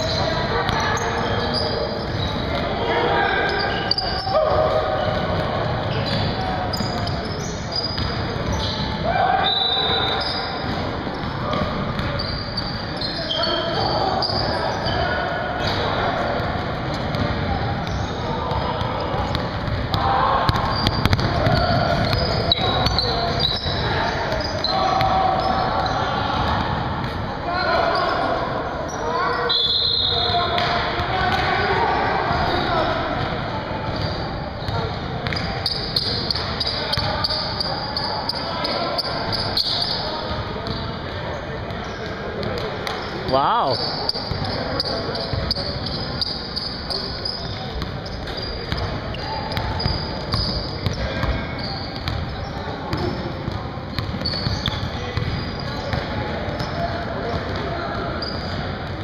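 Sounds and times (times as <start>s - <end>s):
players calling out: 0.0s - 58.8s
sneakers squeaking: 0.0s - 59.0s.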